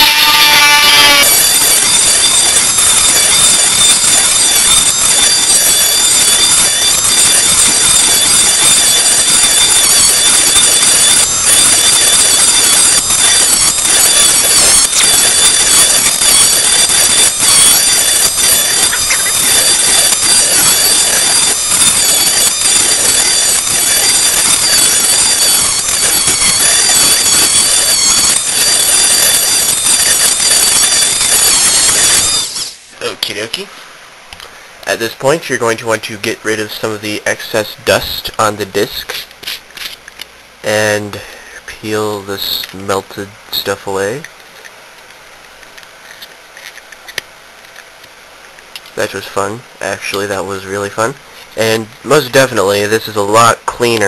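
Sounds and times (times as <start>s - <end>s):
rotary tool grinding plastic: 0.0s - 32.9s, 44.2s - 49.0s.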